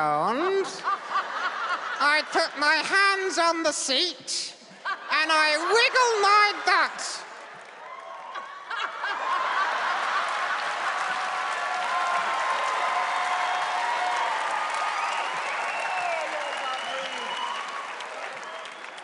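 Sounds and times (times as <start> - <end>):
audience laughing: 0.5 - 3.4, 4.7 - 7.6, 8.2 - 11.7
audience applauding: 7.4 - 19.0.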